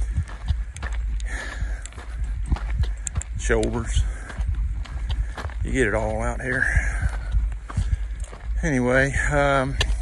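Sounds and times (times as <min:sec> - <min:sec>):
boots crunching on dirt trail: 0:00.0 - 0:10.0.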